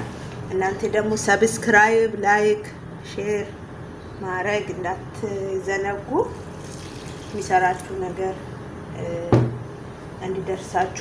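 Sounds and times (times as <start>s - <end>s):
bowl knocking on wooden table: 9.3s - 9.6s.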